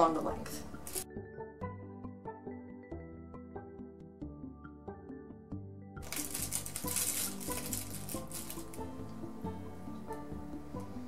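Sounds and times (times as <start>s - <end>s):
background music: 0.0s - 11.0s
aluminium foil crinkling: 0.8s - 1.0s, 6.0s - 9.1s.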